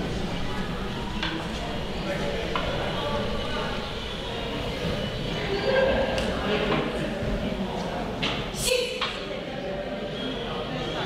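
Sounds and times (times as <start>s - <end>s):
low hall rumble: 0.0s - 8.6s
faint distant voices: 0.0s - 11.0s.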